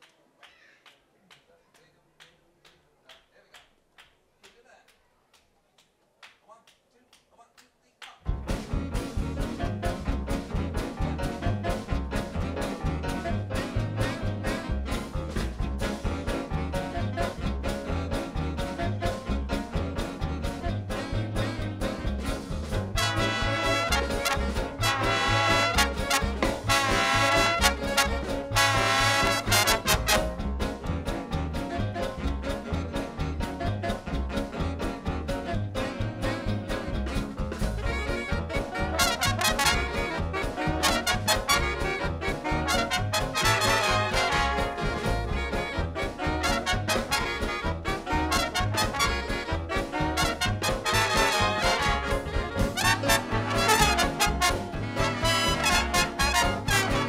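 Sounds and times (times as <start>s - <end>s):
big band playing live: 8.3s - 57.0s
loud brass riffs: 22.9s - 30.6s, 37.1s - 57.0s.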